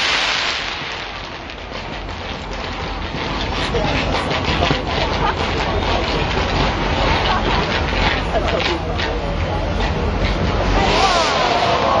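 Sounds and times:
fireworks crackling: 0:00.0 - 0:12.0.

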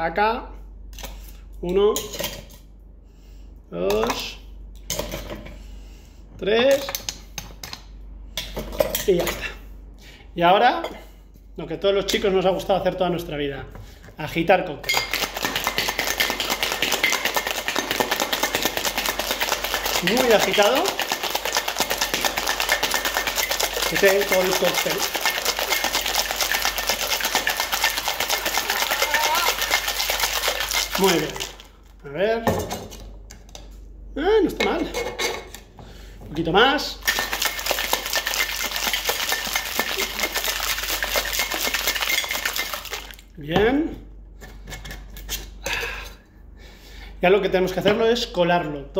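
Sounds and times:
ice rattling in cocktail shaker: 0:14.9 - 0:31.8, 0:37.0 - 0:43.3.

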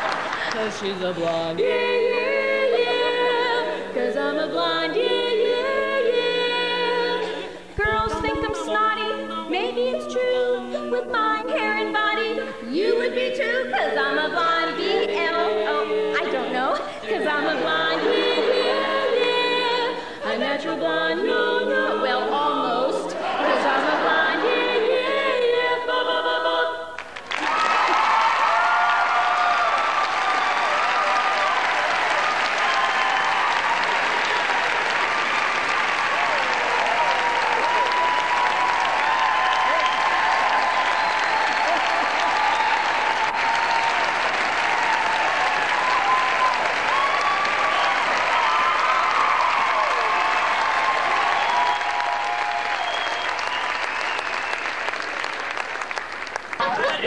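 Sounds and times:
audience applauding and cheering: 0:00.0 - 0:03.6, 0:23.1 - 0:24.8, 0:27.0 - 0:57.0.

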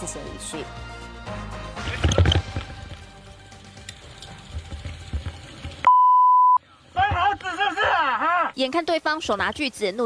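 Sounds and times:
censor bleep: 0:05.9 - 0:06.6.

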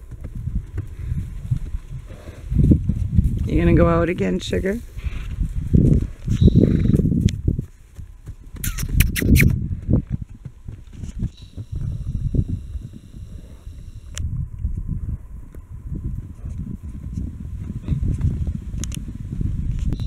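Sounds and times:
horses galloping on hard ground: 0:00.0 - 0:20.0.

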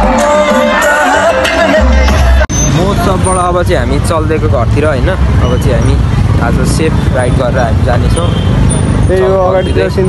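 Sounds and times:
live concert music: 0:00.0 - 0:02.8
crowd noise: 0:00.0 - 0:10.0
vehicle and road rumble: 0:01.8 - 0:10.0
man talking: 0:02.7 - 0:08.4, 0:09.1 - 0:10.0.

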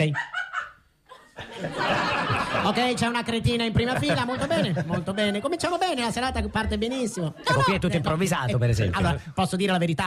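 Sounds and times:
audience laughter: 0:01.3 - 0:03.0, 0:03.8 - 0:05.5.

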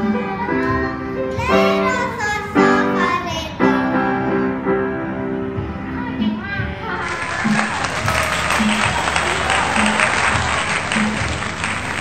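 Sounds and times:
piano accompaniment: 0:00.0 - 0:12.0.

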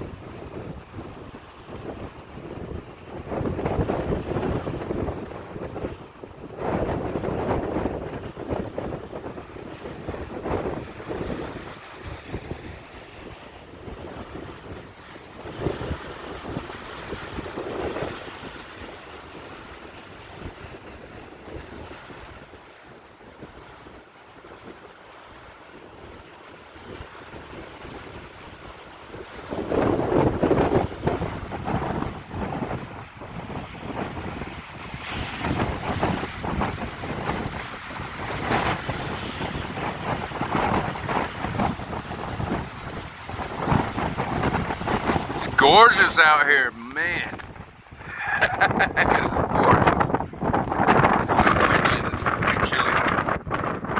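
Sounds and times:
gusty wind on microphone: 0:00.0 - 0:53.9.

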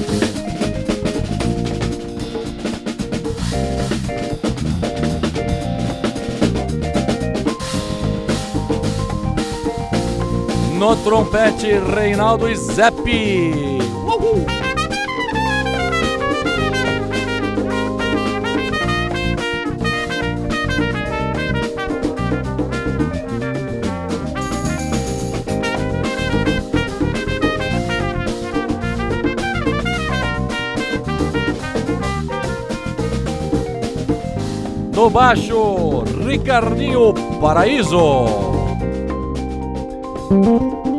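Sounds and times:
drum kit: 0:00.0 - 0:40.9
live band playing: 0:00.0 - 0:40.9
trumpet solo: 0:10.7 - 0:33.2.

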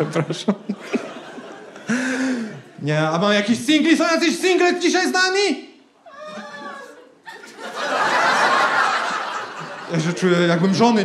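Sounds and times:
audience laughing: 0:00.0 - 0:02.8, 0:06.5 - 0:11.0.

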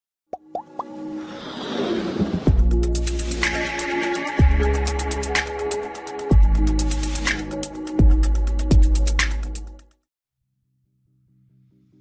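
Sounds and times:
quick pops rising in pitch: 0:00.3 - 0:01.0.

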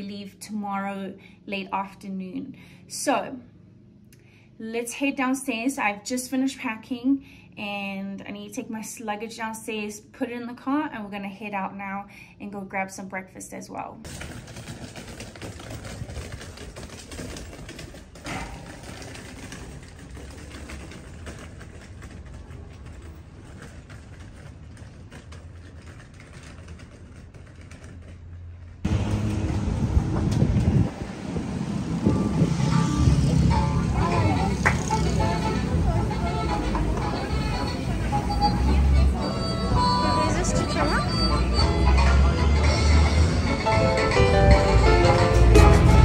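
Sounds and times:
suitcase wheels rattling over cobblestones: 0:14.0 - 0:46.0
music: 0:32.1 - 0:46.0
voices: 0:32.7 - 0:43.6.

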